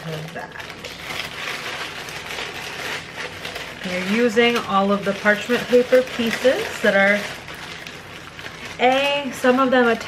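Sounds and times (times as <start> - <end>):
parchment paper rustling: 0.0 - 10.0.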